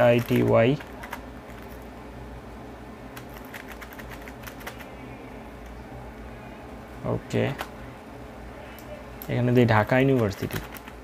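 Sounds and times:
soft keyboard keystrokes: 3.2 - 4.9, 10.1 - 11.0.

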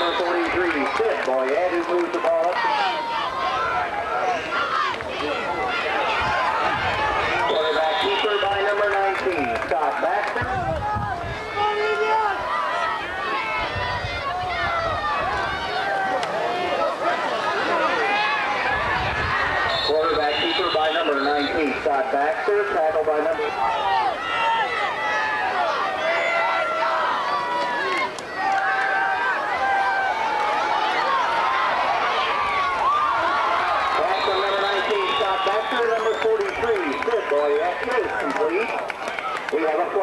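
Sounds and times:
crowd shouting and cheering: 0.0 - 40.0.

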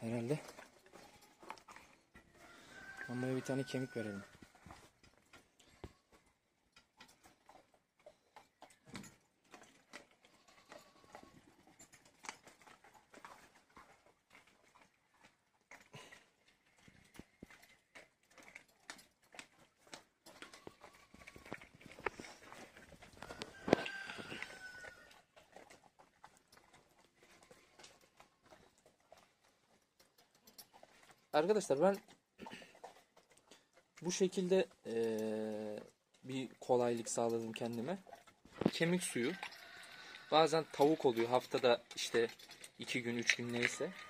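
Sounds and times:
dog gnawing on bone: 0.3 - 44.0.

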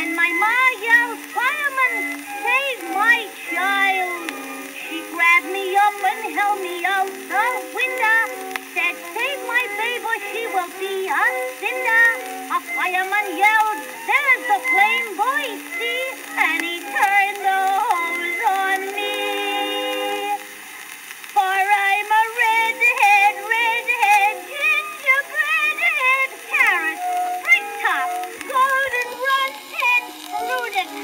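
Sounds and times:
faint surface hiss: 0.0 - 31.0.

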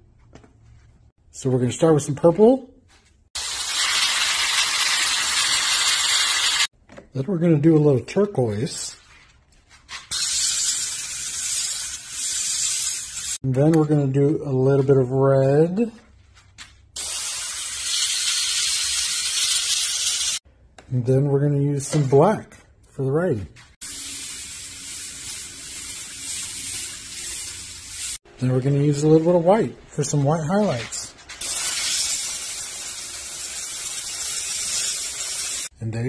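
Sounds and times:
airbrush spraying hiss: 10.2 - 13.4, 17.0 - 20.4, 23.8 - 28.2, 31.4 - 35.7.

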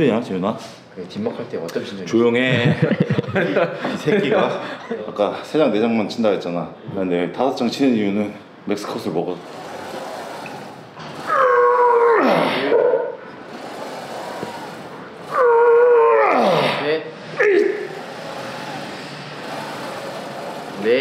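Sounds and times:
man groaning with strain: 11.8 - 12.7, 15.3 - 17.8.

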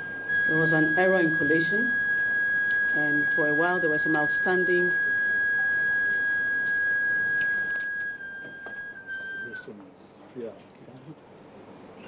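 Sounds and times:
microphone feedback whistle: 0.0 - 9.8.

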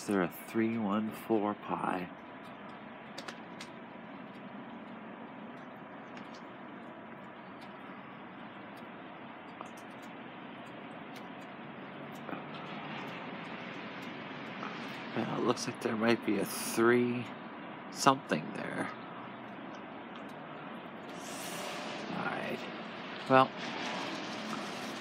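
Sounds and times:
urban background hiss: 0.0 - 25.0.

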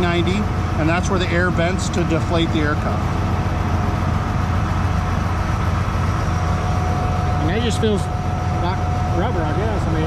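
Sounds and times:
diesel engine idling: 0.0 - 10.0.

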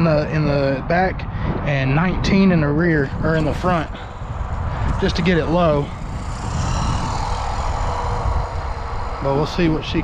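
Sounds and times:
low rumble: 1.6 - 10.0
electric motor whine: 3.2 - 10.0.

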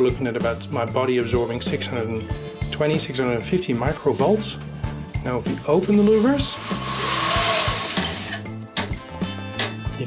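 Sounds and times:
metal louvers sliding: 6.0 - 8.5.

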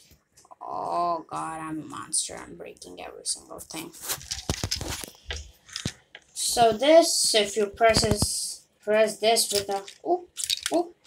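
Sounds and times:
plastic bricks clicking and scraping: 4.0 - 6.7, 9.5 - 11.0.

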